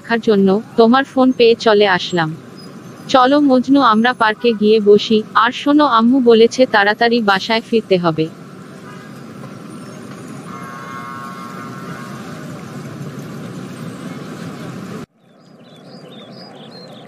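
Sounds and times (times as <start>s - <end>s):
distant traffic noise: 0.0s - 17.0s
birds chirping: 0.1s - 17.0s.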